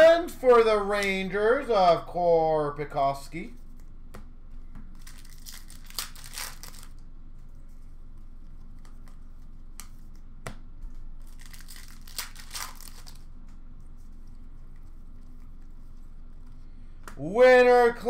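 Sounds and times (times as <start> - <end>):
foil wrappers crinkling and tearing: 5.0 - 7.0, 11.2 - 13.3.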